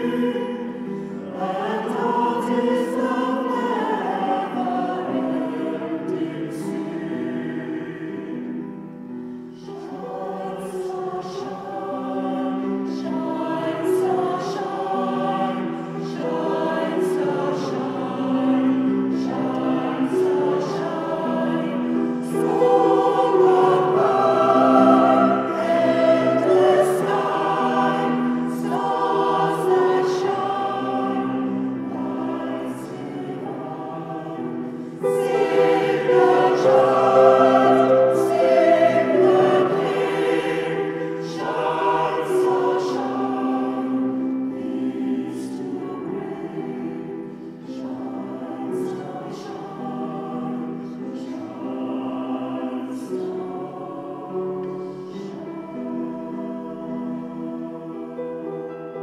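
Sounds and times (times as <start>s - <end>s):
choir singing sacred music: 0.0s - 59.0s.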